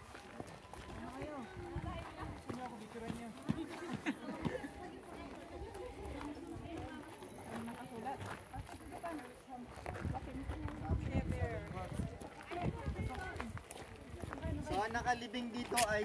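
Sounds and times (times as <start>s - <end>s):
footsteps on pavement: 0.0s - 16.0s
indistinct group talk: 0.0s - 16.0s.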